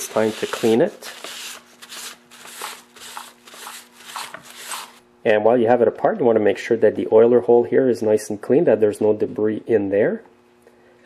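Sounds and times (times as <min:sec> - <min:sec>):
paper towel wiping: 0:00.0 - 0:05.0.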